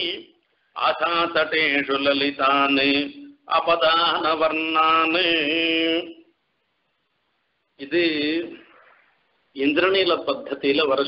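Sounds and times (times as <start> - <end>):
man chanting verse: 7.8 - 8.9.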